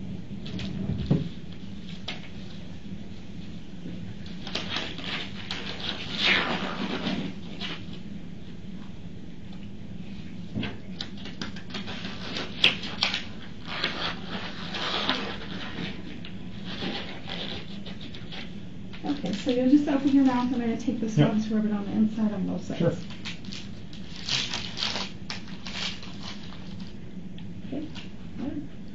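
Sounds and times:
low room hum: 0:00.0 - 0:28.9
packaging rustling and crinkling: 0:19.0 - 0:20.6, 0:22.9 - 0:27.0.

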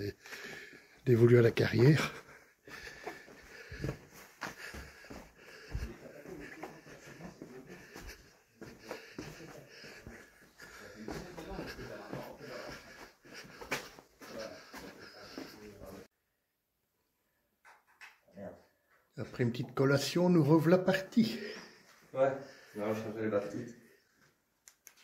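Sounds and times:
person breathing heavily: 0:00.0 - 0:01.0, 0:01.8 - 0:16.1, 0:21.2 - 0:23.0.

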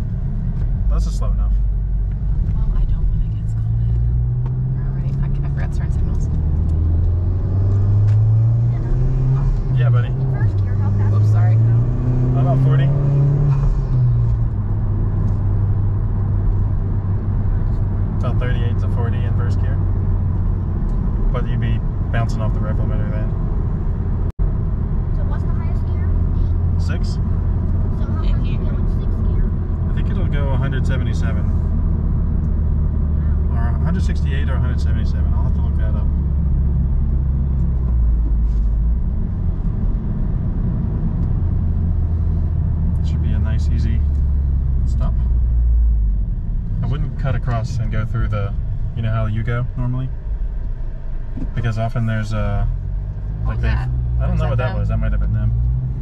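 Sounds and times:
car engine accelerating through gears: 0:00.0 - 0:25.3, 0:25.9 - 0:56.0
road noise: 0:00.0 - 0:56.0.

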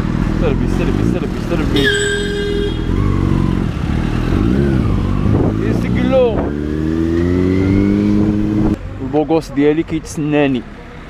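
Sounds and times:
motorcycle engine running: 0:00.0 - 0:05.8
vehicle horn beep: 0:01.8 - 0:03.1.

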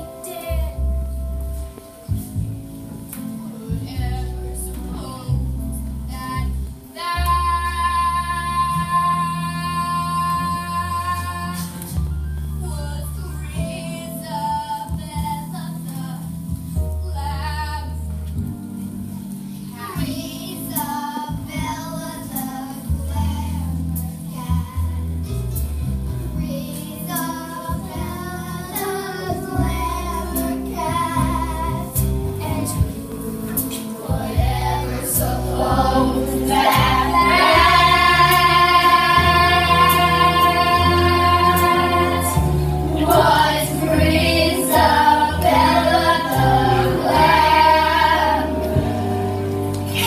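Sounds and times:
musical theatre backing track: 0:00.0 - 0:50.0
children singing: 0:26.5 - 0:50.0.

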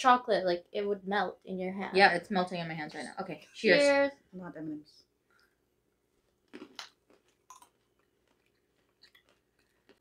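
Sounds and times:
people chewing crunchy almonds: 0:06.2 - 0:10.0.

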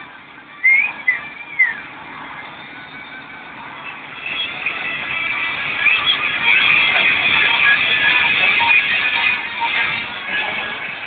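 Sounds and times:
whistle-like chirps: 0:00.6 - 0:01.9.

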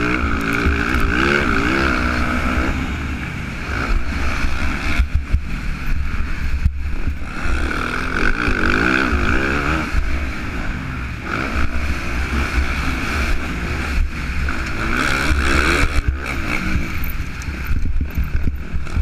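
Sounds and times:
motorcycle engine revving: 0:00.0 - 0:19.0
wind rumble on microphone: 0:00.0 - 0:19.0.

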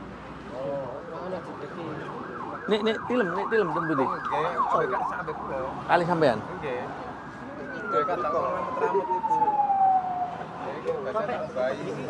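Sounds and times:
quiet voices murmuring: 0:00.4 - 0:12.0.

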